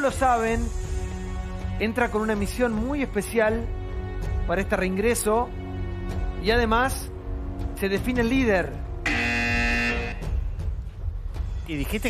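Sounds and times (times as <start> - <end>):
buzzer-like horn blast: 9.0 - 10.5.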